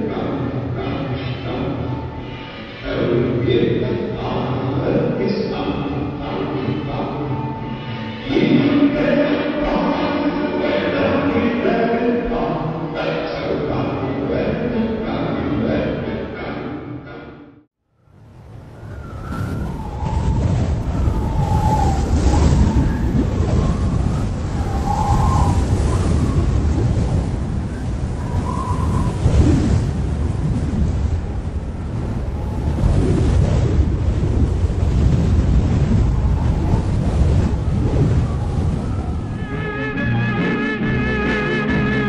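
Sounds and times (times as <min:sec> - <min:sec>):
low rumbling wash of noise: 0:17.9 - 0:42.0.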